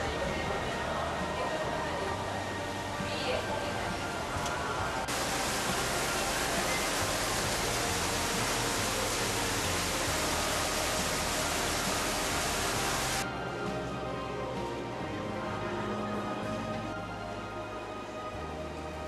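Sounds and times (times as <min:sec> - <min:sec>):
background music: 0:00.0 - 0:19.0
loud rushing hiss: 0:05.1 - 0:13.2.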